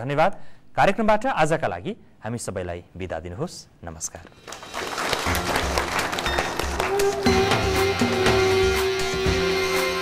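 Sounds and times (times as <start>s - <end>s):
audience applauding: 4.4s - 8.9s
theme music with bass beat: 5.1s - 10.0s
held musical note: 5.3s - 10.0s.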